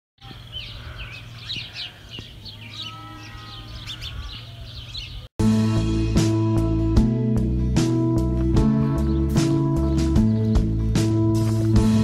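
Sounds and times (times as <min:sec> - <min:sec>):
small birds chirping: 0:00.2 - 0:05.3, 0:08.6 - 0:10.9
loud music: 0:05.4 - 0:12.0.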